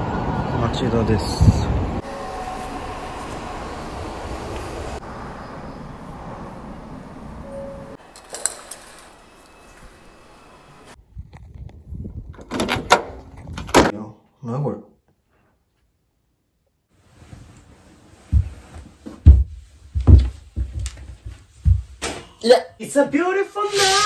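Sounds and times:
train car running noise: 0:00.0 - 0:11.0
keys jangling: 0:08.1 - 0:09.2.

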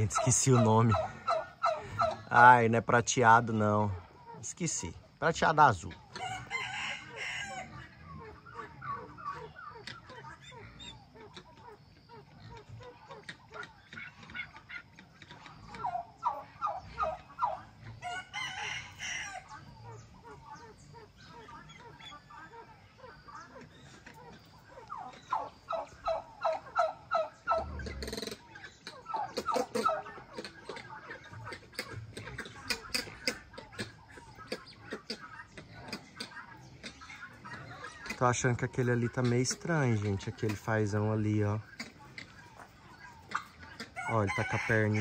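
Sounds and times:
fowl calling: 0:00.0 - 0:45.0.

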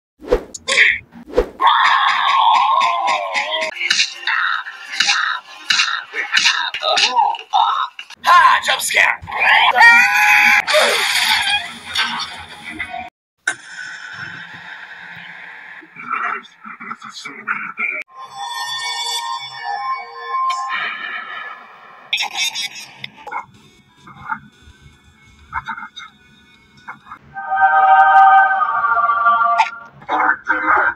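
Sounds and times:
character voices: 0:28.7 - 0:30.9.

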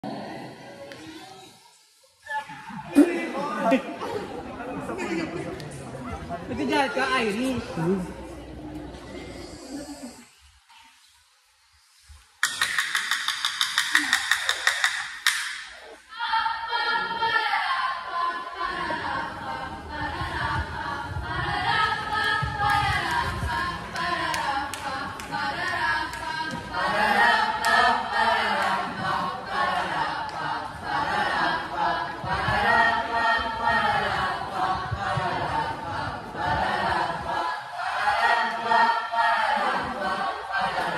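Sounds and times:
choir singing unaccompanied: 0:15.8 - 0:40.9.

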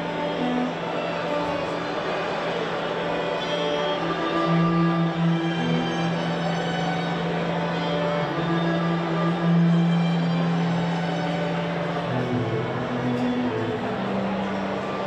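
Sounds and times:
string ensemble playing chords: 0:00.0 - 0:15.0.

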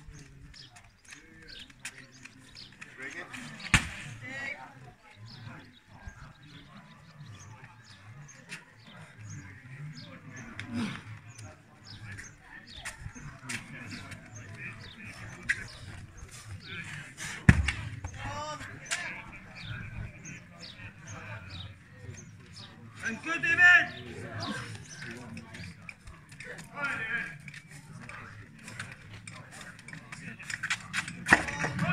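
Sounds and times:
background chatter: 0:00.0 - 0:31.9.

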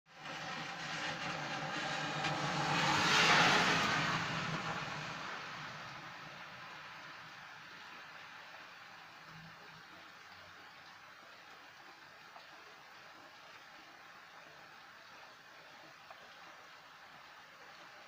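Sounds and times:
car tyres hissing on wet road: 0:00.1 - 0:09.6
rain falling: 0:00.1 - 0:18.0.

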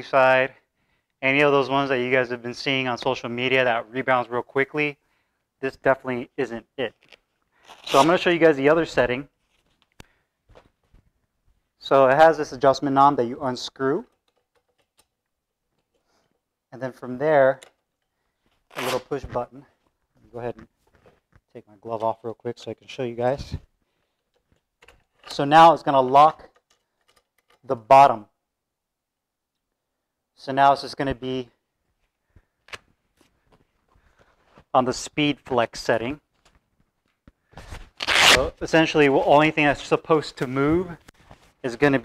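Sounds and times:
boxing gloves clicking and rustling: 0:06.8 - 0:11.8.

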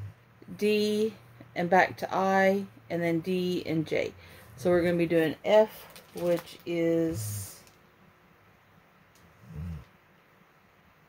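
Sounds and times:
person humming hmm: 0:09.4 - 0:09.9.

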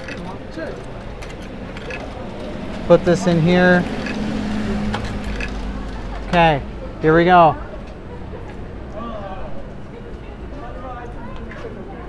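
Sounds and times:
coins clinking into machine: 0:00.0 - 0:02.6, 0:03.8 - 0:04.3, 0:05.2 - 0:05.7.

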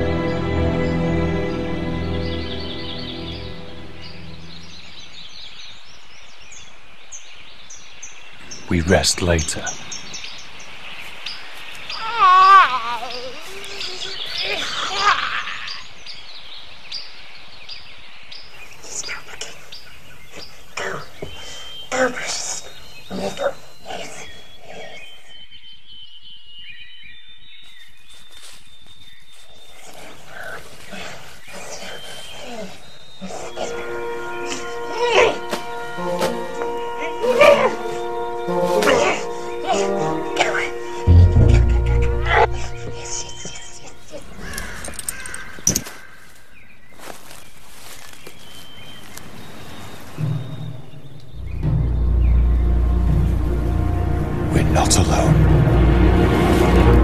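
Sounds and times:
film soundtrack music: 0:00.0 - 0:05.1, 0:08.4 - 0:10.4, 0:33.3 - 0:44.6, 0:50.1 - 0:57.0
birds chirping: 0:00.0 - 0:57.0
faint forest sounds: 0:00.0 - 0:57.0
deep low rumble: 0:41.1 - 0:43.7, 0:50.2 - 0:57.0.

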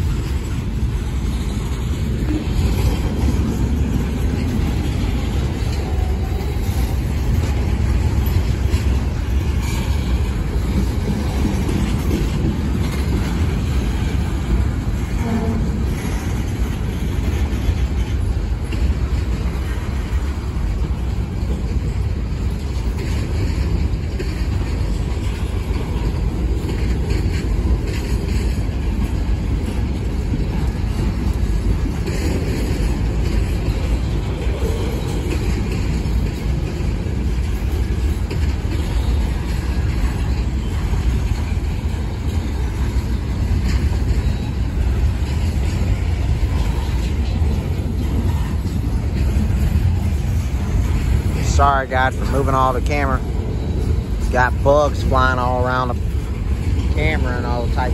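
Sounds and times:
freight train wheels rumbling on rails: 0:00.0 - 0:57.9
sharp knocks of train wheels: 0:00.0 - 0:57.9.

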